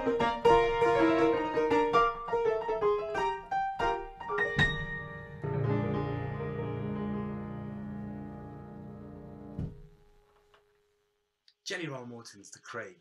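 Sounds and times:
jazz piano playing: 0.0 - 10.0.

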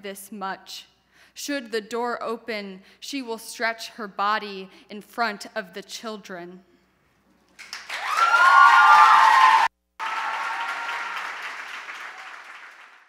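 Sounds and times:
audience applause: 7.6 - 13.0
audience cheering: 7.7 - 13.0.

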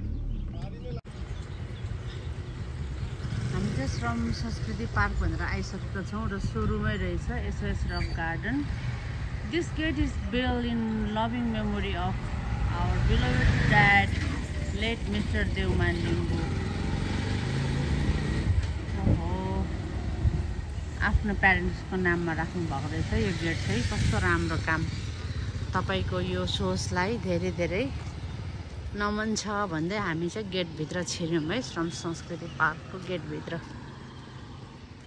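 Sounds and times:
vehicle engine rumbling: 0.0 - 35.0.

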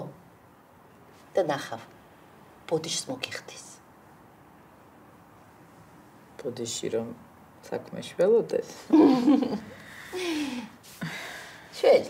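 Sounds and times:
woman speaking: 1.3 - 1.9, 2.7 - 3.8, 11.7 - 12.0.

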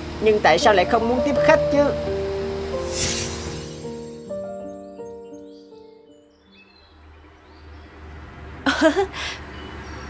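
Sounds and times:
background music: 0.0 - 6.7.

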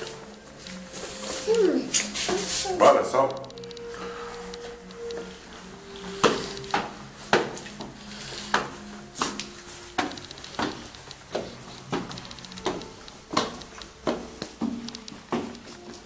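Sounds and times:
footsteps on stone stairs: 0.0 - 16.0.

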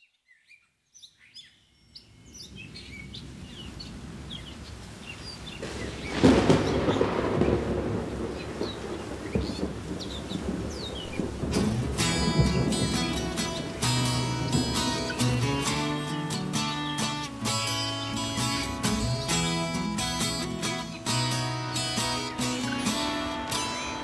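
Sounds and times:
birds chirping: 0.0 - 24.0
thunder rumbling: 2.3 - 24.0
acoustic guitar: 11.2 - 24.0.

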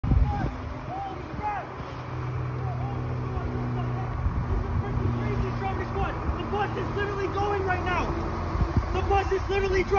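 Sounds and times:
bus engine humming: 0.0 - 9.9
voices calling out: 0.0 - 9.9.

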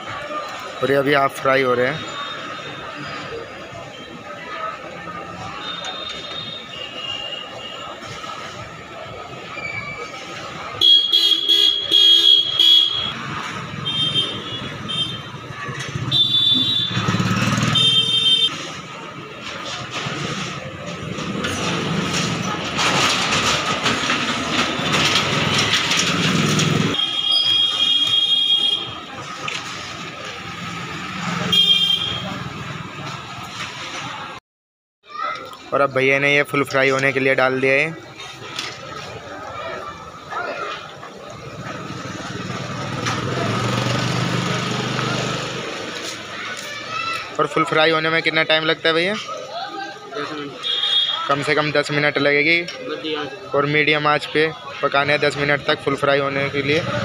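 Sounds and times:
steady traffic noise: 0.0 - 34.4, 35.1 - 57.0
vehicle horns honking: 10.8 - 18.6, 27.0 - 29.1, 31.4 - 32.5, 50.6 - 51.5.

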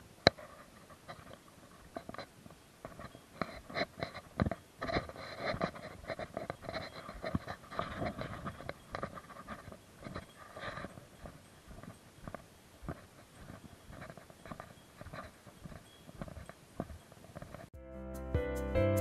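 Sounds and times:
footsteps on rocky trail: 2.9 - 17.7.

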